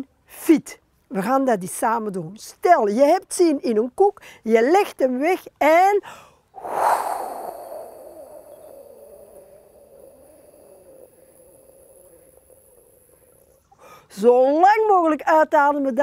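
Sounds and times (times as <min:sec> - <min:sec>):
woman exhaling through pursed lips: 0:06.0 - 0:14.1.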